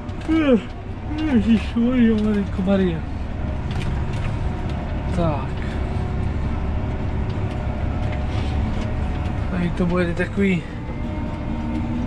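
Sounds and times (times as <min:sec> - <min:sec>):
tractor diesel engine drone: 0:00.0 - 0:12.0.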